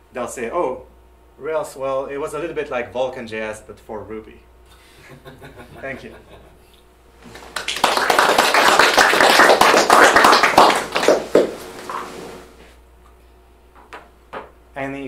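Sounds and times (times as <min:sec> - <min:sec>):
audience applauding: 0:07.2 - 0:11.7.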